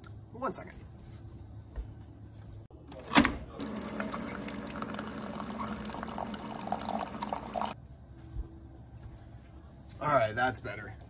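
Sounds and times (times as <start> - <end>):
coffee pouring into a mug: 3.5 - 7.8.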